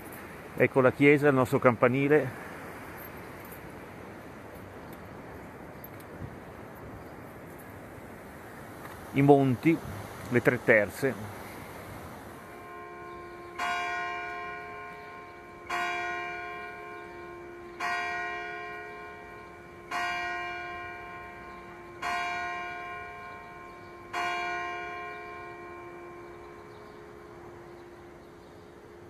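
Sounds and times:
church bell tolling: 12.5 - 28.2.

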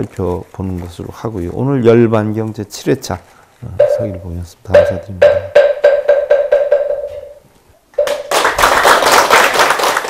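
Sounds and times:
wooden fish struck hollow tone: 3.8 - 7.4
applause: 8.0 - 10.0.

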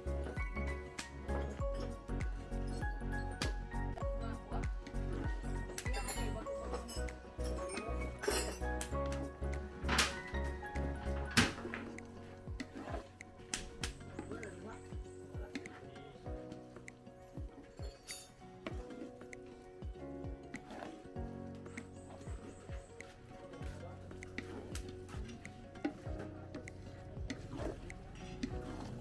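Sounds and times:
background music with heavy bass: 0.0 - 29.0
wooden spatula scraping metal wok: 12.4 - 13.2, 25.8 - 29.0.

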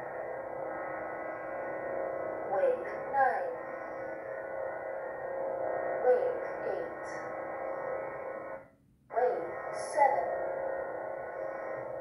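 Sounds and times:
lightsaber blade hum: 0.0 - 12.0.

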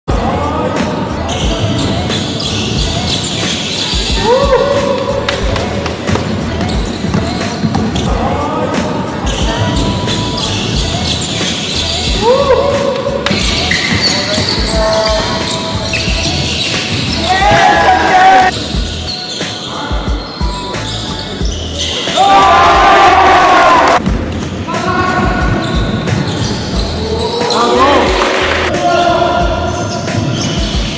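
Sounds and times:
players calling out: 0.3 - 24.0, 24.7 - 30.9
sneakers squeaking: 0.4 - 30.9
basketball bouncing: 5.2 - 8.2, 16.0 - 17.8.

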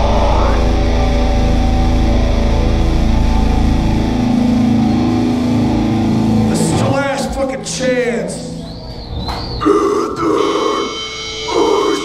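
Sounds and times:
guttural growling vocals: 0.0 - 1.3
high ringing guitar tone: 0.0 - 6.5, 10.6 - 12.0.

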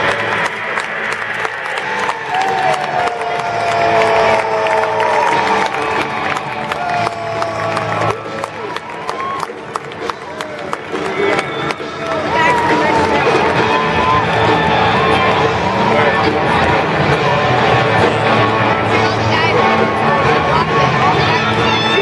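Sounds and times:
music playing: 0.0 - 22.0
scattered cheering: 0.0 - 22.0
stadium crowd noise: 0.0 - 22.0.

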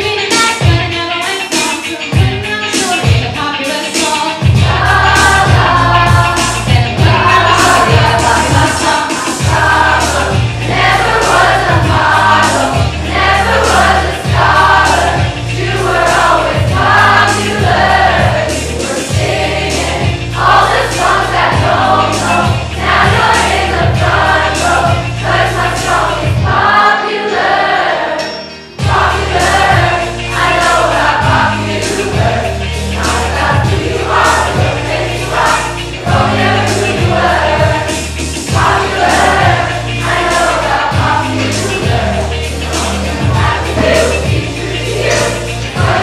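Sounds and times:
group of young voices singing: 0.0 - 46.0
music with steady low beat: 4.4 - 8.8, 9.4 - 26.6, 28.8 - 46.0.

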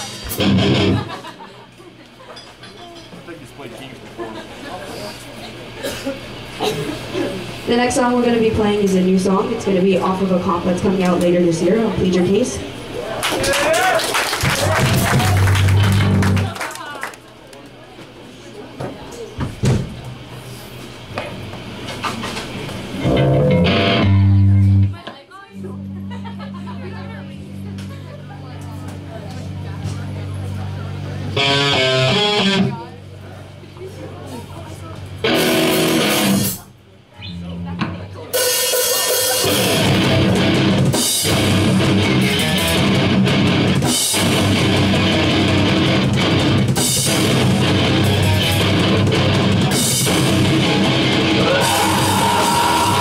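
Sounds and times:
hardcore band playing live: 0.0 - 1.4, 14.4 - 16.6, 22.9 - 25.0, 25.6 - 32.9, 35.2 - 36.7, 37.3 - 53.0
loud electric guitar chord: 0.1 - 1.1, 23.0 - 25.0, 25.6 - 32.9, 35.2 - 36.6, 38.4 - 53.0.

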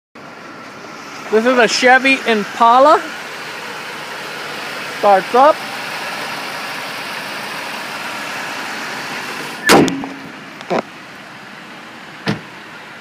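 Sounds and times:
car engine idling: 0.2 - 13.0
car hood slamming shut: 9.6 - 10.4, 12.2 - 12.5.

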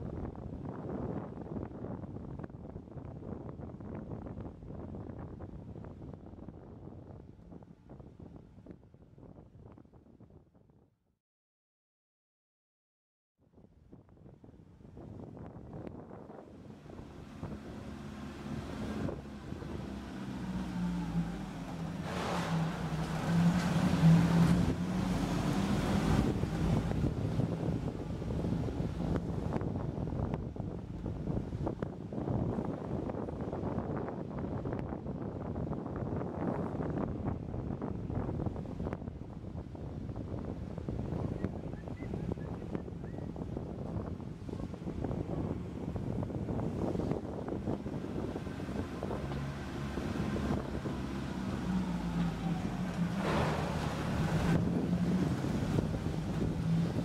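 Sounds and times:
car engine and tyres rumbling: 14.4 - 57.0.

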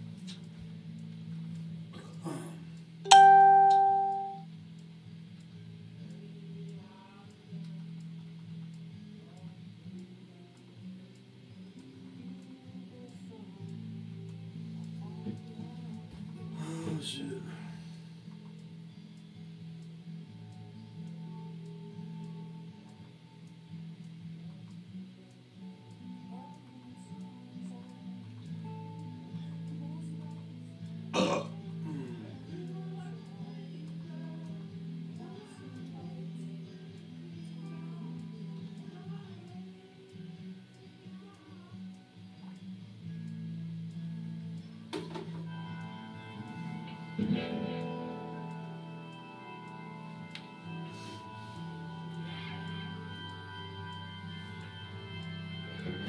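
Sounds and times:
steady low hum: 0.0 - 56.0
electric guitar music: 2.8 - 6.8, 7.4 - 56.0
bright pitched note ringing: 3.1 - 4.4.

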